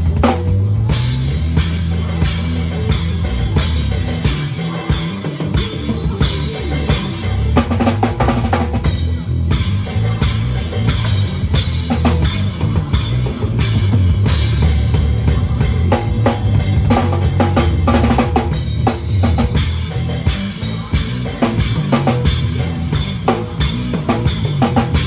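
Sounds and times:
drum kit playing: 0.0s - 25.0s.

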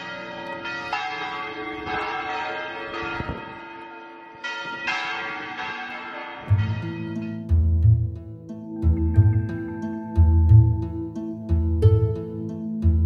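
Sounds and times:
church bells ringing: 0.0s - 11.2s.

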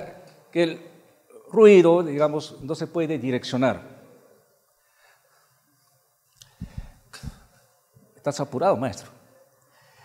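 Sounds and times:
microphone handling thumps: 6.6s - 7.5s.

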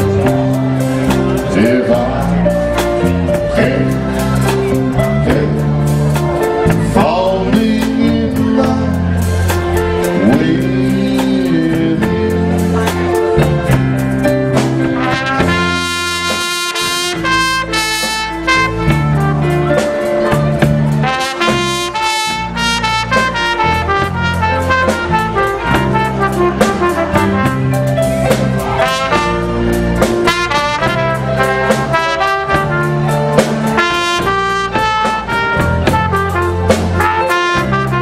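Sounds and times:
steady drum beat: 0.0s - 38.0s
sustained bass line: 0.0s - 38.0s
trumpet playing slow melody: 14.8s - 38.0s.

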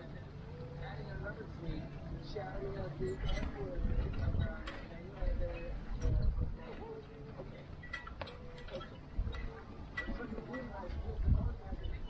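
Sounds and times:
wind buffeting microphone: 1.7s - 7.3s, 8.4s - 12.0s.

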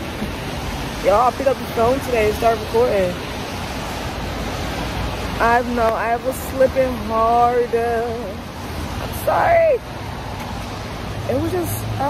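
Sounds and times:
steady rain hissing: 0.0s - 12.0s.

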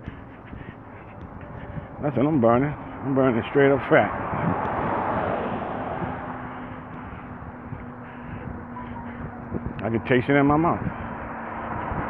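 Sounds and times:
cars rushing on road: 0.0s - 12.0s.

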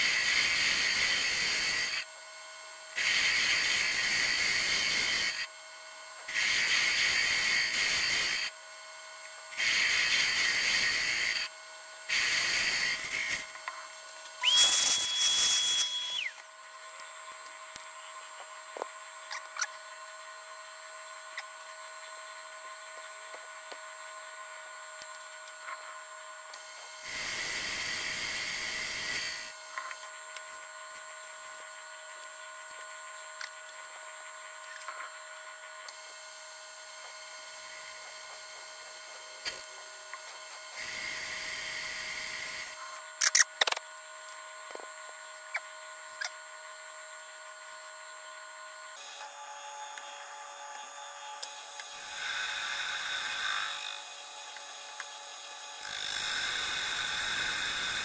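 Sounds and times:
hissy cutting bursts: 0.0s - 2.1s, 2.9s - 5.5s, 6.2s - 8.5s, 9.5s - 11.5s, 12.1s - 16.4s, 26.6s - 29.8s, 51.0s - 58.0s
metal lathe hum: 2.9s - 5.5s, 6.3s - 16.4s, 26.6s - 29.8s, 49.0s - 58.0s
high whistling squeal: 14.4s - 16.4s.

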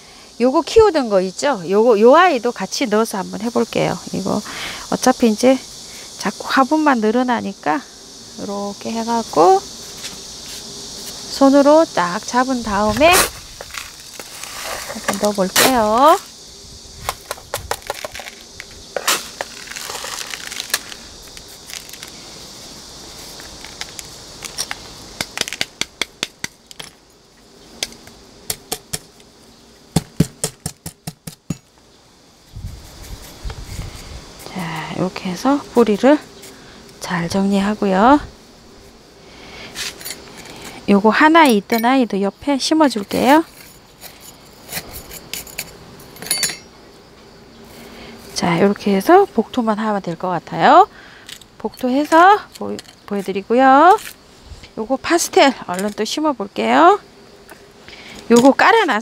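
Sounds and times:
faint steady hiss: 0.0s - 59.0s
metal tool clicking and clinking: 46.2s - 46.7s.

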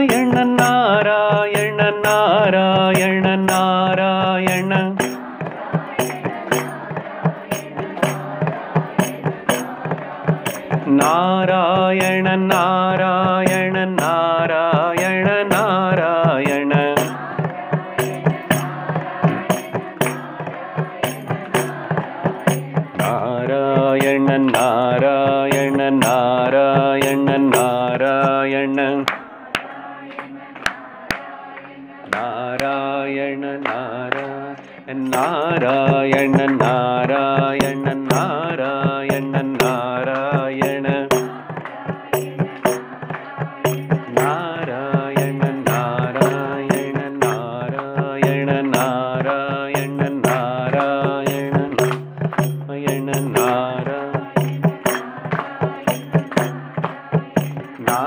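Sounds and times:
man chanting: 0.0s - 5.1s, 10.8s - 17.2s, 23.0s - 29.1s, 32.2s - 41.3s, 44.1s - 54.6s, 57.8s - 58.0s
hand-held jingle strikes: 0.0s - 29.7s, 33.6s - 58.0s.

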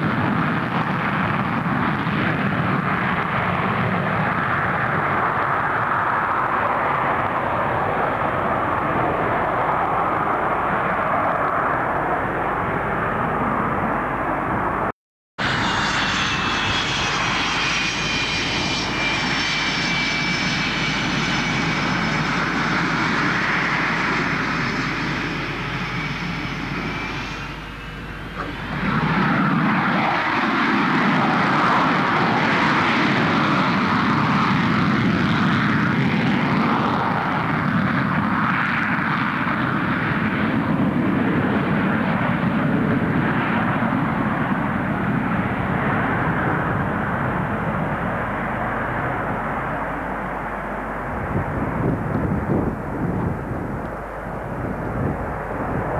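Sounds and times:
high whistling jet whine: 0.0s - 55.9s
jet engine roar: 0.0s - 55.9s.

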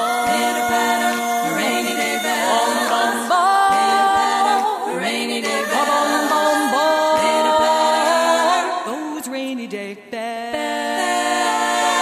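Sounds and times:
women singing close harmony: 0.0s - 12.0s.

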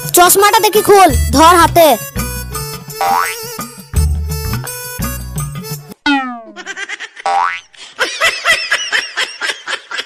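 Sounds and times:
high-pitched warbling tones: 6.0s - 6.7s.

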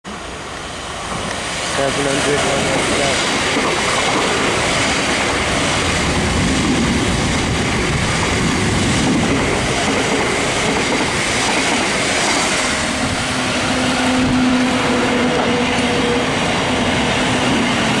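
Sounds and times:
train passing at speed: 0.1s - 18.0s.

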